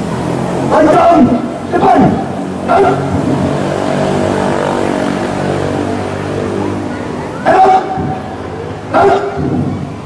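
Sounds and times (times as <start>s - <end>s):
engine running steadily: 0.0s - 10.0s
person shouting command: 0.7s - 3.1s, 7.4s - 8.2s, 8.9s - 9.7s.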